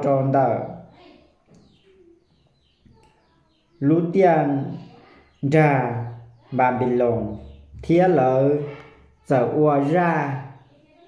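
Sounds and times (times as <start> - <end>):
bird chirps: 0.0 - 11.0
speech: 3.8 - 11.0.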